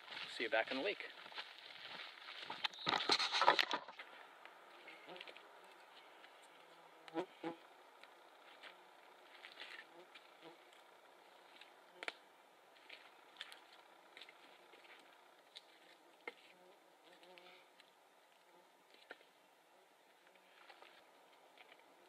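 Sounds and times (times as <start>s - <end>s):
campfire crackling: 1.1s - 22.0s.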